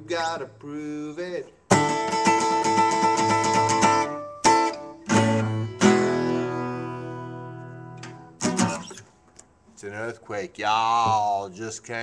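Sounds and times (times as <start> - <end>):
acoustic guitar strumming: 1.5 - 9.3.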